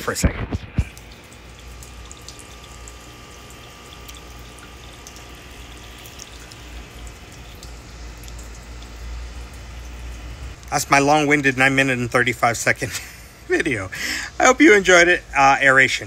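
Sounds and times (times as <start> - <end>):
fountain water splashing and trickling: 0.8 - 10.0.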